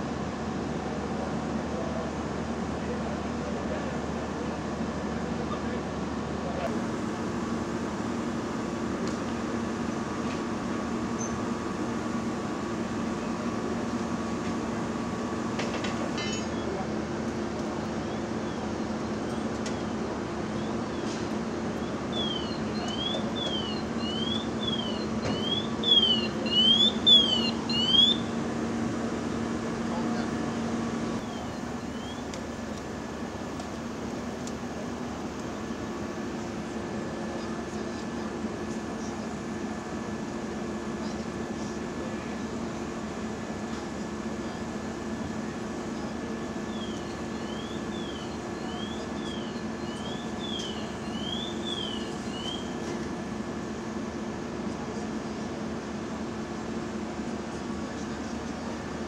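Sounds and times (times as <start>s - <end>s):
fire engine running: 0.0s - 59.0s
high sweeping siren chirp: 22.1s - 28.4s, 46.7s - 52.8s.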